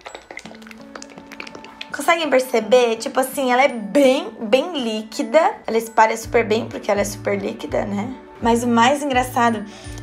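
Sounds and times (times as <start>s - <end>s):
cosmetic bottle taps and clicks: 0.0s - 2.0s
quiet background music: 0.0s - 10.0s.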